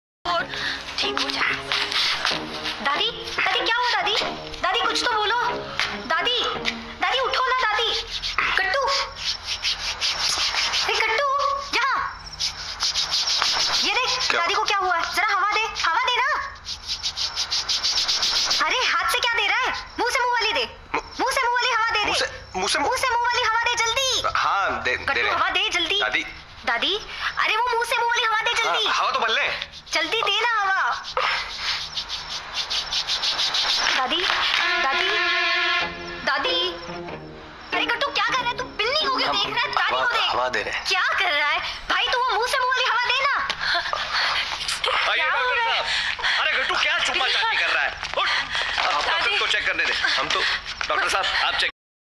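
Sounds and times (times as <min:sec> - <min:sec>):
hands rubbing on skin: 0:00.6 - 0:05.1, 0:07.2 - 0:20.0, 0:25.5 - 0:35.5, 0:43.2 - 0:51.5
sustained music tones: 0:34.4 - 0:39.8.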